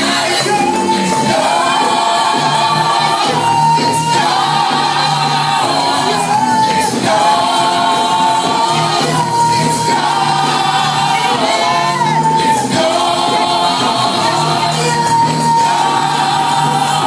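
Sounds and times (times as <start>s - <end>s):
group singing gospel: 0.0s - 17.0s
worship music: 0.0s - 17.0s.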